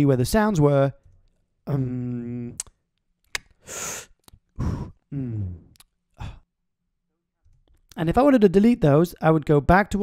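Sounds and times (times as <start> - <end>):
mouth click: 2.4 - 3.6
breathy exhale: 3.6 - 5.4
man's short low vocal sound: 4.6 - 6.4.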